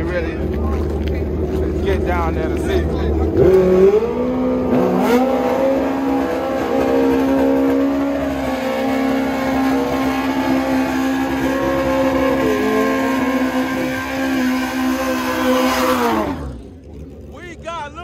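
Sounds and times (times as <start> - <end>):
motorcycle engine revving high: 1.6 - 16.8.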